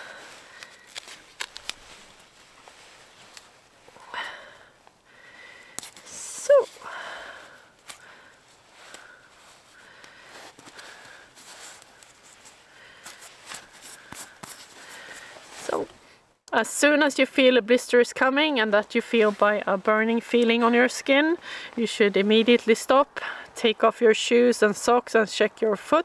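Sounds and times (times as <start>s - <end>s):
jacket sleeve rustling: 0.0s - 4.0s, 7.8s - 16.0s
tape crackling and rubbing: 0.2s - 4.0s, 5.8s - 6.8s, 7.8s - 15.9s.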